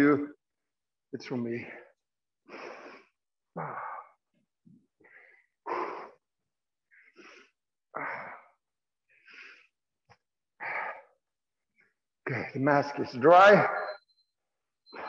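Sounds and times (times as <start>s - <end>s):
man breathing hard: 1.8s - 9.8s, 10.6s - 11.3s.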